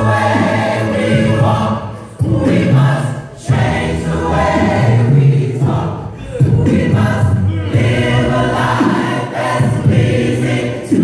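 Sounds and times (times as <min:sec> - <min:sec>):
gospel choir singing a cappella: 0:00.0 - 0:11.0.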